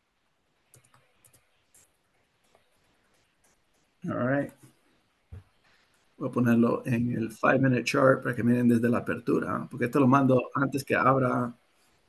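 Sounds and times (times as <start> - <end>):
computer mouse clicks: 0.7 - 6.2.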